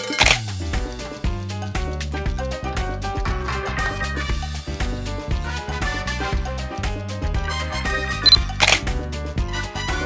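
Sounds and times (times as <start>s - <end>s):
upbeat background music: 0.0s - 10.0s
camera shutter click: 8.3s - 8.8s.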